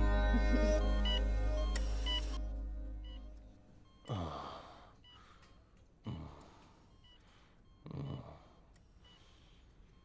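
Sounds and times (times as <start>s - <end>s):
background music: 0.0s - 3.7s
patient monitor beeps: 0.0s - 10.0s.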